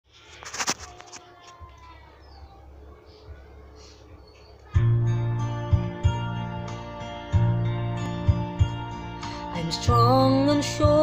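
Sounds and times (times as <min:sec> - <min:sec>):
backing music: 0:04.8 - 0:11.0.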